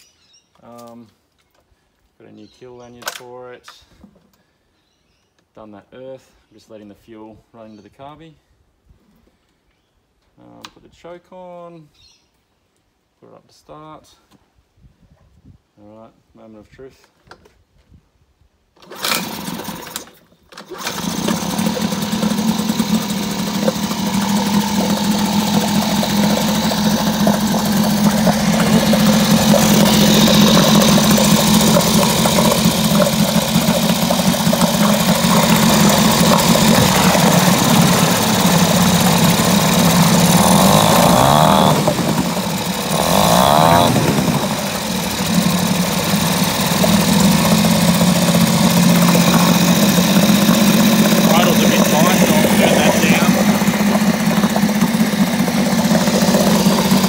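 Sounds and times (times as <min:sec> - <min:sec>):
outboard motor starting and idling: 0:18.8 - 0:57.0.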